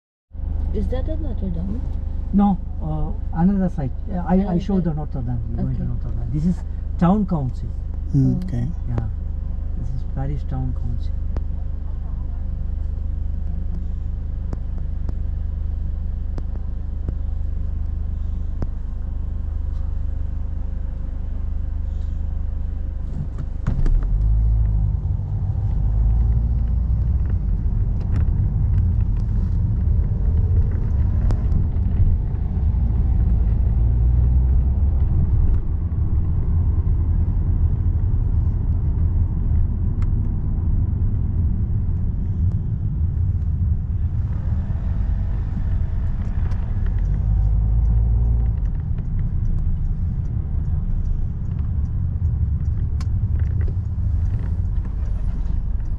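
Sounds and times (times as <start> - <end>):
engine and road rumble: 0.3 - 55.9
car cabin low hum: 0.4 - 55.9.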